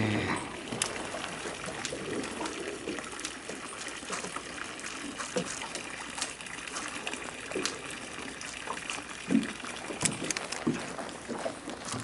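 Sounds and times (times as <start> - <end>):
water trickling and dripping: 0.0 - 12.0
small ticks and clicks: 0.7 - 12.0.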